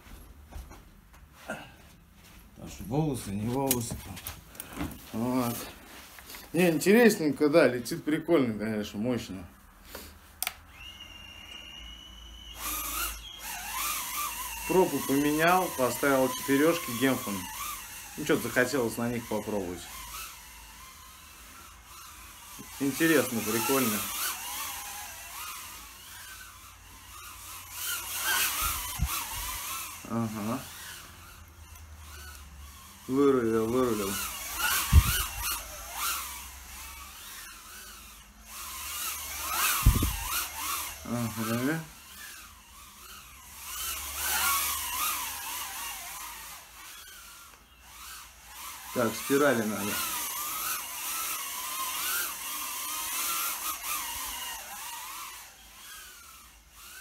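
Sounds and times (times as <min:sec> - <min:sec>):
click: 0:10.4 - 0:10.6
drone motors whining: 0:10.4 - 0:57.0.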